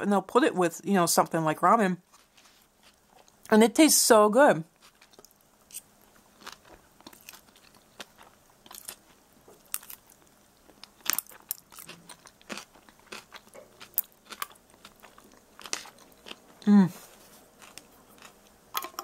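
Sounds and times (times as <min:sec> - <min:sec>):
person chewing crunchy food: 0:04.8 - 0:19.0.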